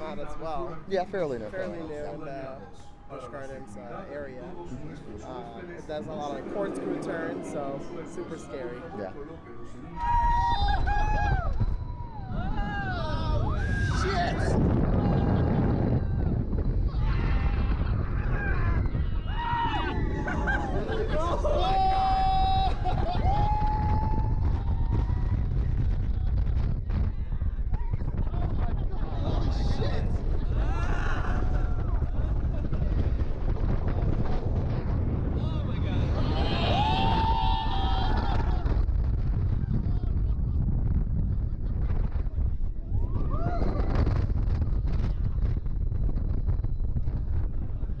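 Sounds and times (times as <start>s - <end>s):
wind rushing on microphone: 0.0s - 48.0s
riders screaming: 9.9s - 25.7s, 36.0s - 38.8s.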